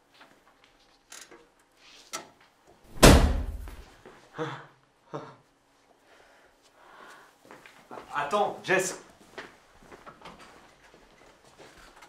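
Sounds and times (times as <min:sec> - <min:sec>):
faint footsteps on wooden floor: 0:06.6 - 0:12.0.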